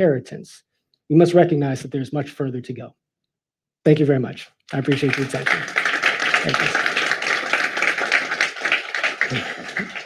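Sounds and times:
audience applauding: 4.7 - 10.0.

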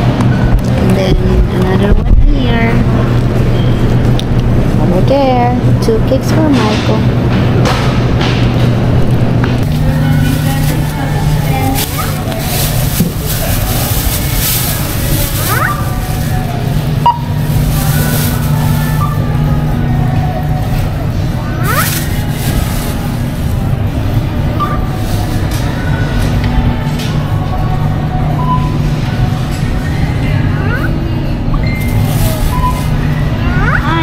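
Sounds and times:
distant voices: 0.0 - 34.0
steady low hum: 0.0 - 34.0
checkout register beeps: 3.4 - 4.2, 15.1 - 22.7, 24.5 - 25.2, 27.2 - 34.0
plastic bag rustling: 9.6 - 27.4, 31.7 - 33.8
faint background music: 9.6 - 34.0.

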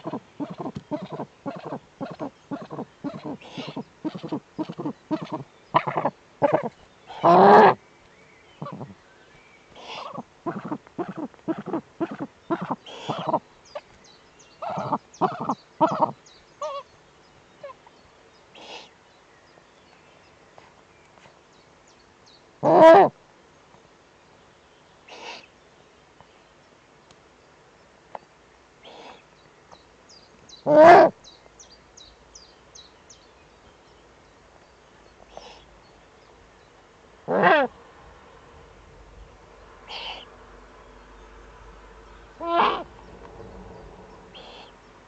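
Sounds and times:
owl calling: 0.0 - 7.8, 8.6 - 9.0, 9.8 - 13.8, 14.6 - 16.9, 22.6 - 23.2, 30.6 - 31.2, 35.3 - 35.6, 37.3 - 37.7, 39.9 - 40.3, 42.4 - 42.9, 44.4 - 44.8
owl hissing: 0.0 - 7.8, 8.6 - 9.0, 9.7 - 13.4, 14.6 - 16.9, 18.6 - 18.9, 25.1 - 25.6, 28.8 - 29.3, 30.6 - 31.2, 35.3 - 35.7, 37.3 - 37.7, 39.8 - 40.3, 42.4 - 42.9, 44.3 - 44.8
faint songbird chirps: 0.0 - 37.4, 39.1 - 45.0.

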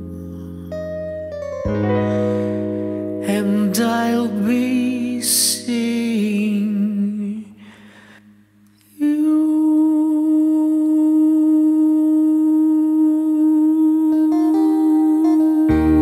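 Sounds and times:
backing track: 0.0 - 5.8
man singing with vibrato: 3.2 - 8.1, 8.9 - 16.0.

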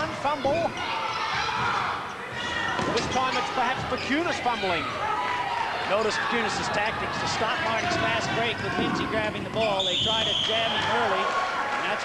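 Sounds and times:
crowd noise: 0.0 - 12.0
ball bouncing on court: 2.7 - 4.1.

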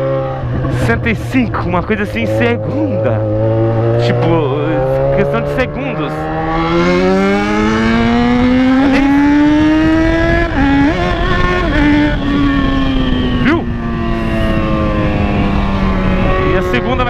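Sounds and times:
motorcycle engine accelerating: 0.0 - 17.0
wind rush: 6.2 - 17.0.

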